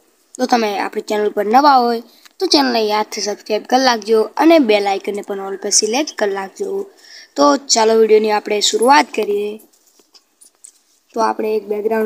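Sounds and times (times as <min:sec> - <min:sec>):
faint clicks: 0:02.2 - 0:02.4, 0:09.2 - 0:10.9.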